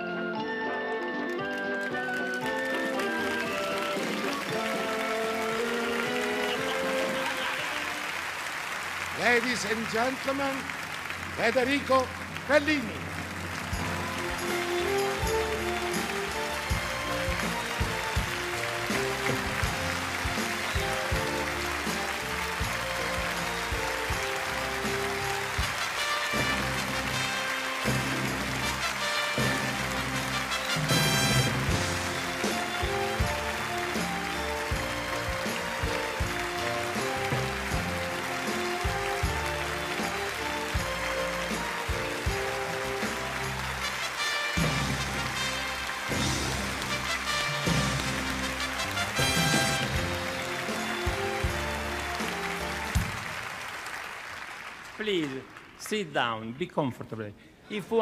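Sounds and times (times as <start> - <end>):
music playing: 0.0 - 55.3
audience applause: 0.7 - 56.6.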